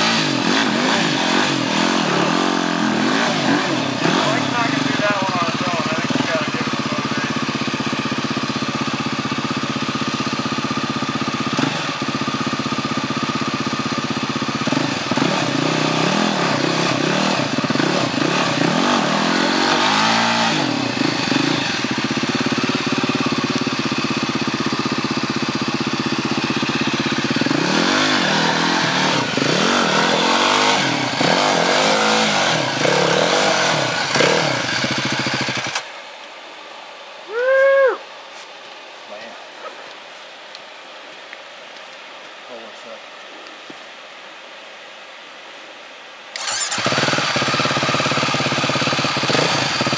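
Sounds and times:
motorcycle engine revving: 0.0 - 36.0, 46.4 - 49.9.

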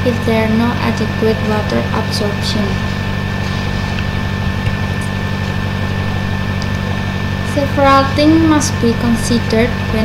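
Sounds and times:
high steady whine: 0.0 - 10.0
steady low hum: 0.0 - 10.0.

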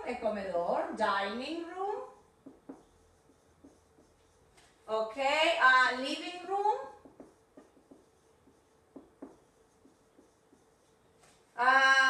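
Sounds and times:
woman speaking: 0.0 - 2.2, 4.9 - 7.0, 11.6 - 12.0
marker writing on whiteboard: 1.8 - 4.9, 5.9 - 11.5.

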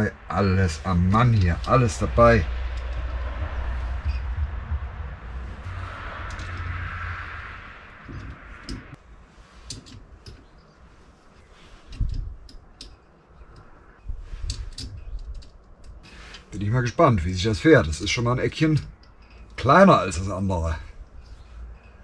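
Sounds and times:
low rumble with hiss: 0.0 - 22.0
allen key clicking on screws: 11.9 - 13.8, 14.4 - 16.5.

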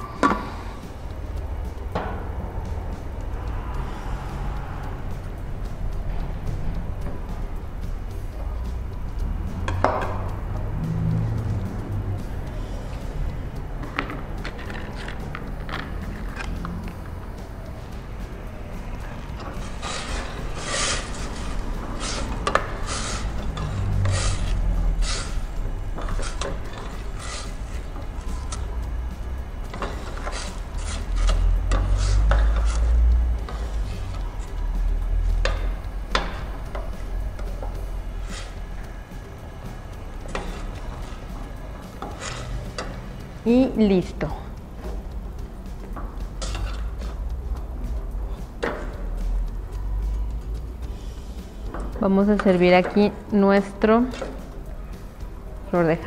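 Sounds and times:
low rumble: 0.7 - 29.7
metal spoon scraping a pot: 18.8 - 39.0, 39.7 - 43.4, 46.3 - 47.2.

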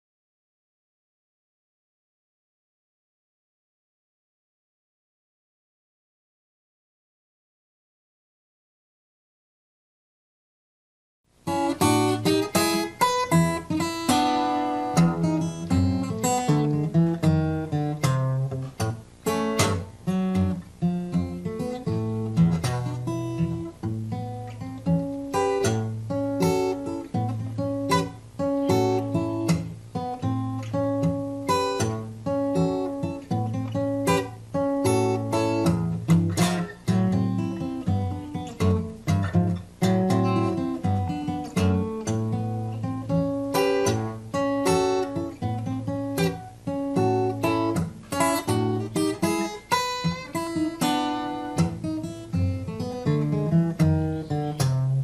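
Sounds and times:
fingerstyle acoustic guitar: 11.4 - 55.0.

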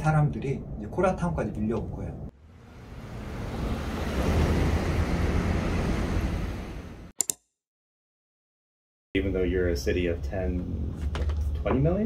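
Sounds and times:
steady rushing noise: 2.5 - 7.1
short clicks: 7.2 - 7.4.

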